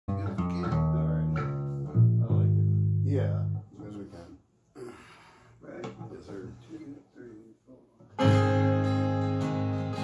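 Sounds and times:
deep bass: 0.1 - 3.7
man speaking: 2.2 - 8.0
acoustic and electric guitars: 8.1 - 10.0.

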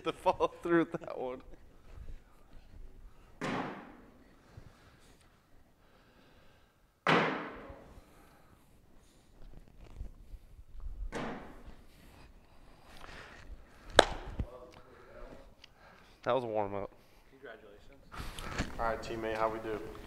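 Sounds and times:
bean bags landing on wooden board: 3.4 - 4.1, 7.0 - 7.8.

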